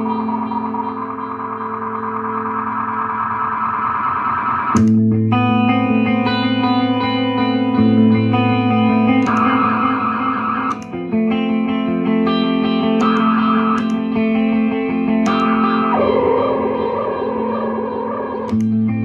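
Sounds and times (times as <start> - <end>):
warbling high wash: 0.0 - 4.8, 15.3 - 19.0
electric guitar chords with delay: 0.0 - 19.0.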